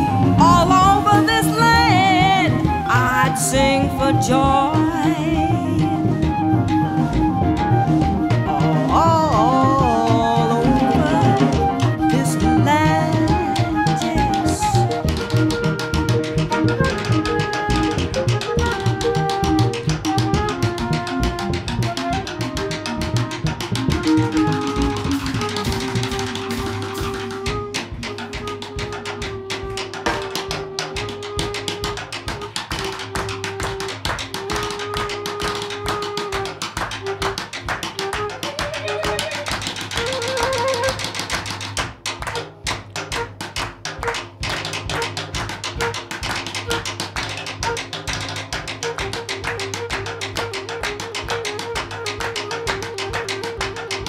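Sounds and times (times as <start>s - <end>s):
jazz band playing: 0.0s - 54.0s.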